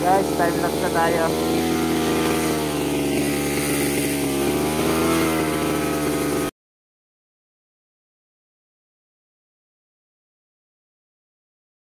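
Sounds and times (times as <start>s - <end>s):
brush cutter engine running: 0.0s - 6.5s.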